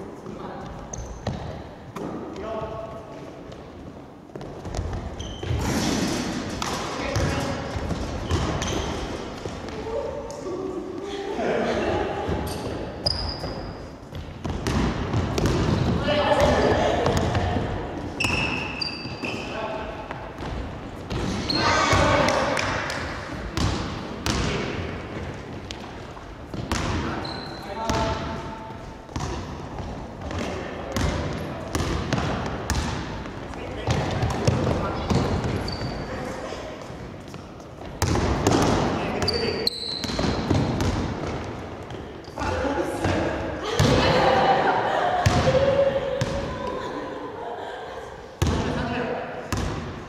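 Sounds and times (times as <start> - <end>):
sneakers squeaking: 0.2 - 10.8, 12.1 - 44.6, 49.5 - 50.0
basketball bouncing on wooden floor: 0.7 - 2.1, 6.6 - 9.8, 13.1 - 17.6, 20.1 - 22.2, 23.5 - 27.1, 29.1 - 36.0, 40.0 - 42.0.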